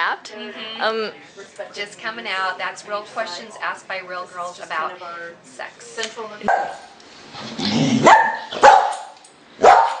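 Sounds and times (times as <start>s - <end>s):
dog barking: 6.5s - 6.9s, 8.0s - 10.0s.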